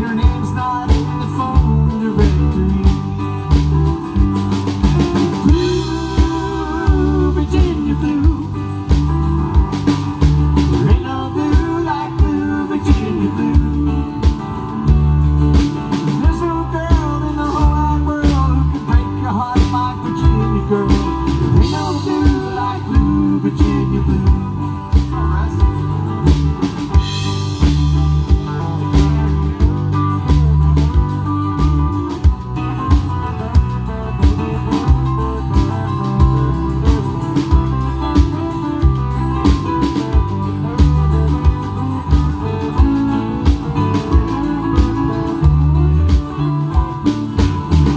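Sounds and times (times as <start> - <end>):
acoustic guitar: 0.0 - 47.9
drum kit: 0.0 - 47.9
electric guitar: 0.0 - 47.9
keyboards: 0.0 - 47.9.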